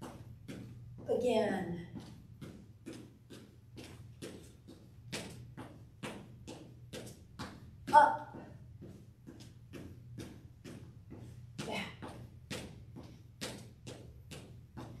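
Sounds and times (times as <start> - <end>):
footsteps on hardwood floor: 0.0 - 15.0.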